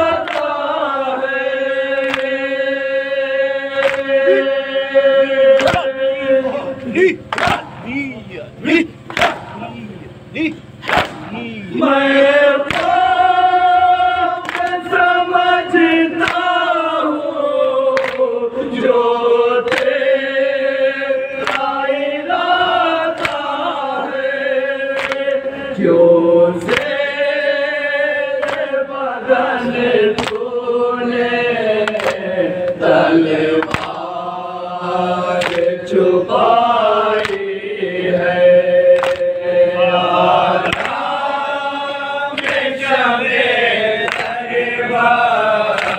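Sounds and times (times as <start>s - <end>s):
men chanting in unison: 0.0s - 45.9s
hands slapping chests: 2.0s - 2.3s, 3.8s - 4.1s, 5.6s - 5.9s, 7.3s - 7.8s, 9.1s - 9.6s, 10.8s - 11.3s, 12.7s - 13.0s, 14.4s - 14.8s, 18.0s - 18.3s, 21.4s - 21.7s, 25.0s - 25.2s, 28.4s - 28.7s, 31.8s - 32.8s, 33.6s - 34.0s, 35.4s - 35.7s, 37.2s - 37.4s, 39.0s - 39.3s, 40.6s - 41.0s, 44.1s - 44.4s
hand slapping chest: 5.6s - 5.9s, 10.8s - 11.3s, 28.4s - 28.7s, 33.6s - 34.0s.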